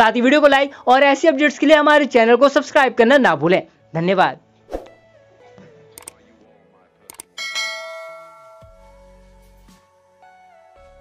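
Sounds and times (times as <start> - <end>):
mouse clicks: 6.0 - 6.2
bright bell ding: 7.4 - 8.9.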